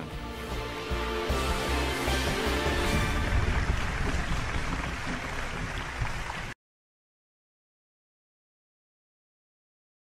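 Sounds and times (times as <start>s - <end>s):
people applauding: 1.8s - 6.6s.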